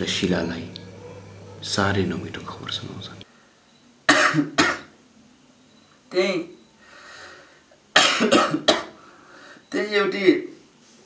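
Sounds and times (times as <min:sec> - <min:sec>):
person coughing: 0:04.1 - 0:04.9, 0:08.0 - 0:09.0.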